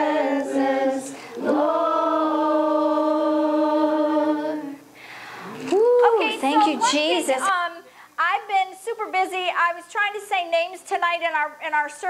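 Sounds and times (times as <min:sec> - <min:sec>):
woman singing worship song: 0:00.0 - 0:04.9.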